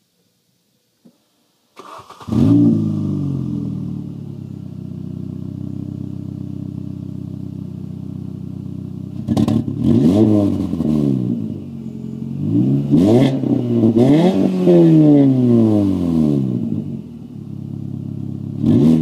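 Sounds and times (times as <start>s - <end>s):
car engine revving: 1.8s - 19.0s.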